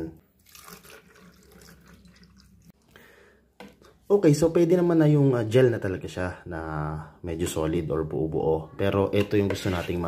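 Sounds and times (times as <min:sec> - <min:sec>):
wet gel stirred with spoon: 0:09.1 - 0:10.0.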